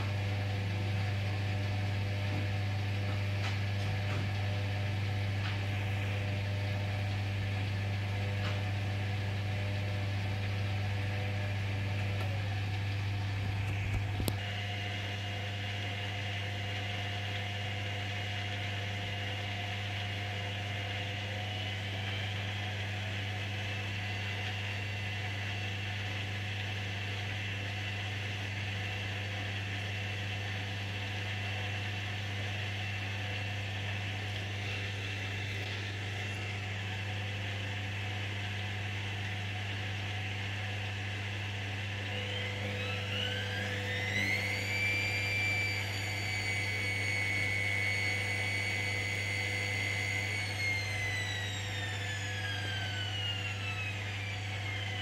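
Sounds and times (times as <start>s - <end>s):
washing machine spinning: 0.0s - 55.0s.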